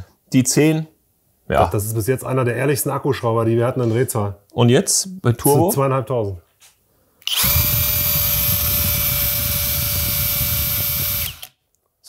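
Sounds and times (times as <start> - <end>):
cordless drill motor whine: 7.2 - 11.5.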